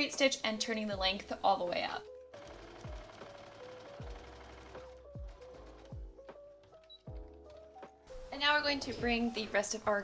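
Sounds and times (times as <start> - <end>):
soft background music: 0.0 - 10.0
sewing machine ticking: 2.4 - 6.0.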